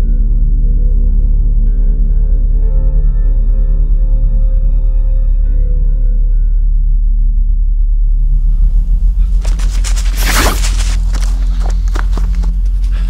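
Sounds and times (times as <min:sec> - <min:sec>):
deep steady rumble: 0:06.8 - 0:13.0
quick footsteps: 0:09.2 - 0:13.0
loud whoosh: 0:09.6 - 0:11.2.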